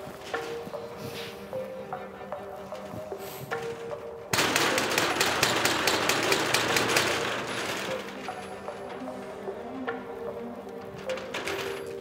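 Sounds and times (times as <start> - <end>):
fist banging on metal shutter: 3.6 - 9.6.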